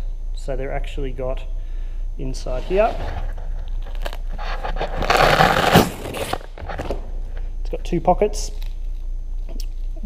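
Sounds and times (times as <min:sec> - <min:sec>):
fabric rasping tear: 0:03.9 - 0:06.4.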